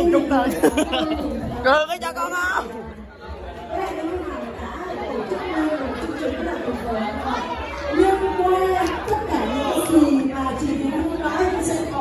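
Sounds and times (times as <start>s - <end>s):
woman speaking through microphone: 0.0s - 3.0s, 3.7s - 12.0s
chatter of many voices: 0.0s - 12.0s.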